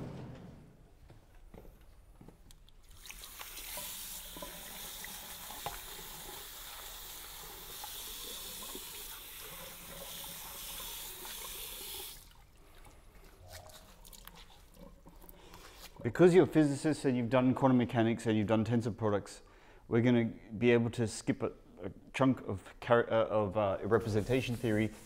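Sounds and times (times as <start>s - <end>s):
tap water running into sink: 2.9s - 12.4s.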